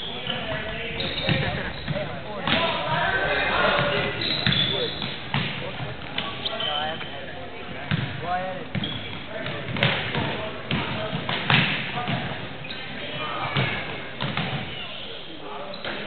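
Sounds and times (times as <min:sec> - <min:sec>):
sneaker squeaks: 0:00.0 - 0:05.5, 0:06.2 - 0:07.3, 0:08.7 - 0:16.0.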